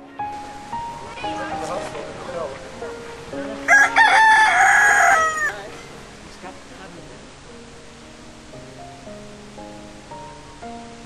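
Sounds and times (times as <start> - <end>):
rooster crowing: 3.7 - 5.7.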